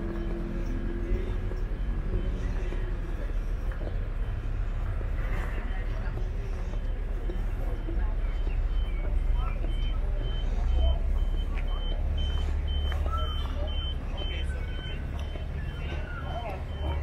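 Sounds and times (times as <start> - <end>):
electronic warning beeper: 6.1 - 17.0.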